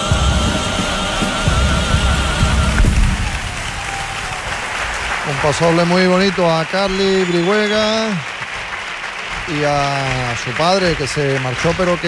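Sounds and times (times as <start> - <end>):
choir singing with guitars: 0.0 - 3.4
audience applause: 2.5 - 12.0.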